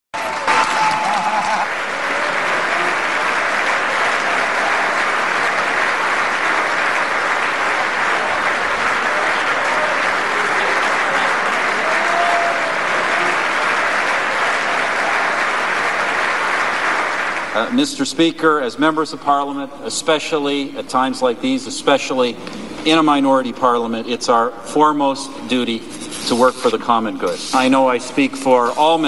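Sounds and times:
crowd applause: 0:00.2 - 0:18.2
faint voices: 0:00.4 - 0:15.3.

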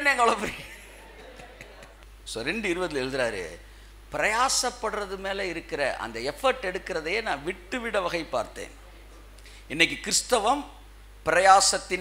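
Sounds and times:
man speaking: 0:00.0 - 0:00.7, 0:02.3 - 0:09.1.

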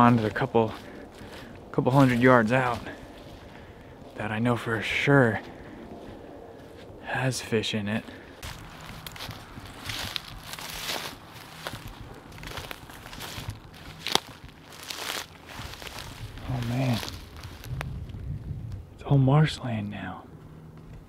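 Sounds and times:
man's voice: 0:00.0 - 0:00.9, 0:01.7 - 0:03.1, 0:04.1 - 0:05.6, 0:07.0 - 0:08.2, 0:16.4 - 0:17.2, 0:19.0 - 0:20.3
footsteps crunching through dry grass: 0:00.0 - 0:21.0.

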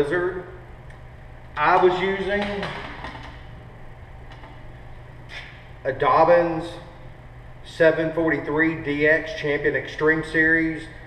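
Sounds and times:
low indoor room hum: 0:00.0 - 0:11.0.

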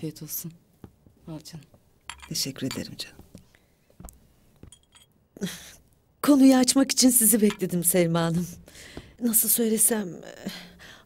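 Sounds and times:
glasses clinking on saucers: 0:02.1 - 0:02.9, 0:04.6 - 0:05.2.

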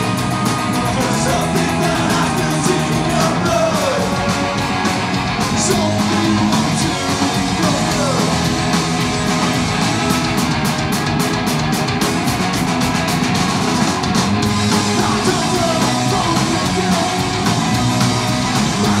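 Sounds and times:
punk rock band playing live: 0:00.0 - 0:19.0.

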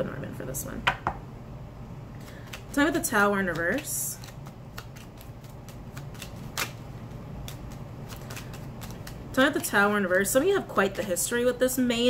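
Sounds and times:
cards being shuffled: 0:02.2 - 0:09.8.

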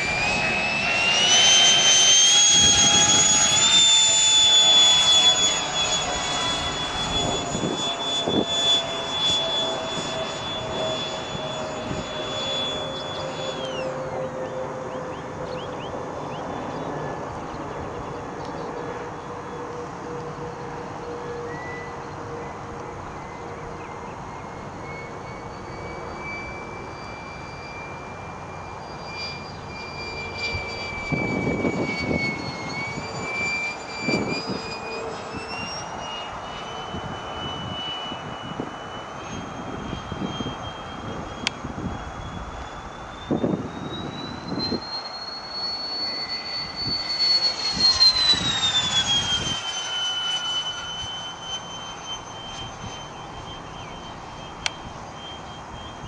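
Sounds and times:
model jet fan whine: 0:00.0 - 0:56.0.

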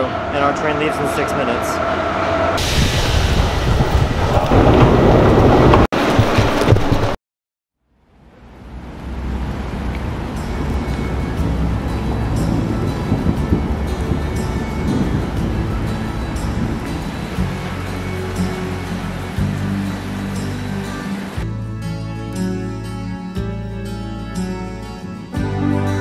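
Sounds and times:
dense wash of background music: 0:00.0 - 0:03.4, 0:08.3 - 0:26.0
sustained low notes: 0:08.1 - 0:21.8.

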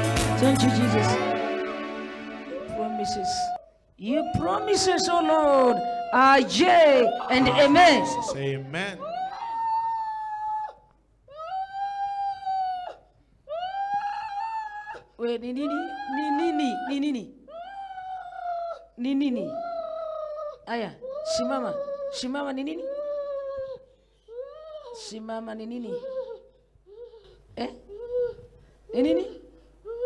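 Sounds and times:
woman wailing: 0:02.5 - 0:23.7.

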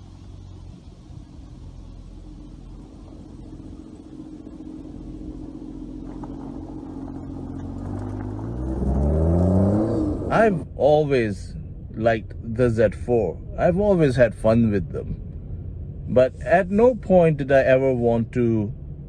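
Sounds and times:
car engine revving up: 0:00.0 - 0:15.2
car engine running: 0:00.0 - 0:19.0.

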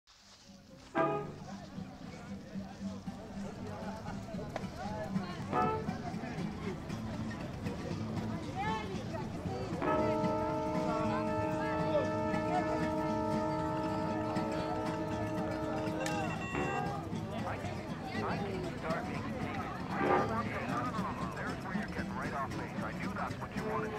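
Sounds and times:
background music: 0:00.4 - 0:23.9
voices: 0:00.5 - 0:23.9.

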